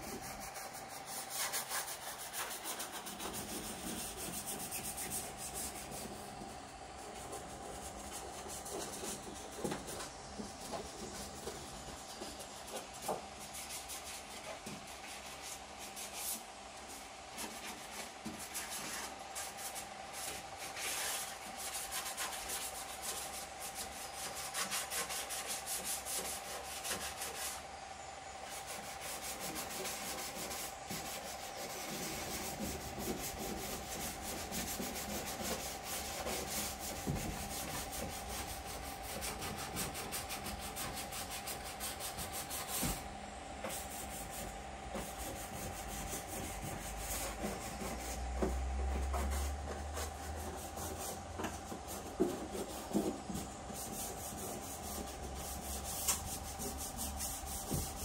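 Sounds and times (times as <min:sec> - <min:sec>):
sanding sheet metal: 0:00.0 - 0:27.6, 0:28.4 - 0:43.0, 0:43.6 - 0:58.0
faint steady hum: 0:00.0 - 0:58.0.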